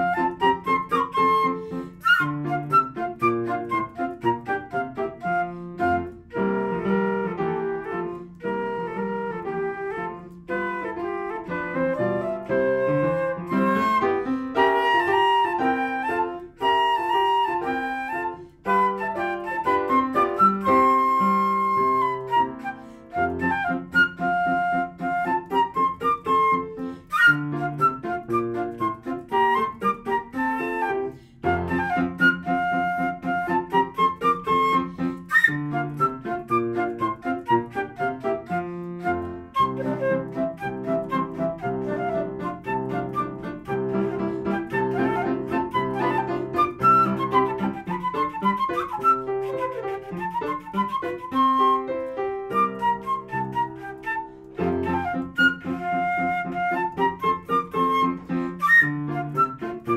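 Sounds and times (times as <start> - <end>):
flute melody: 0.0 - 59.9
piano accompaniment: 0.0 - 59.9.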